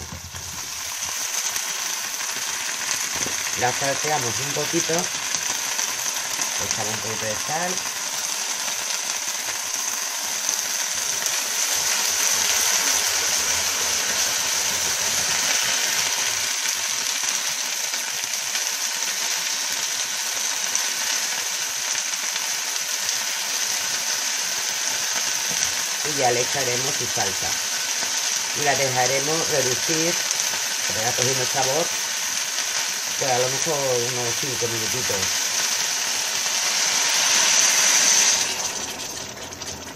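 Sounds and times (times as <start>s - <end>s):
vegetables sizzling in a frying pan: 0.0s - 39.9s.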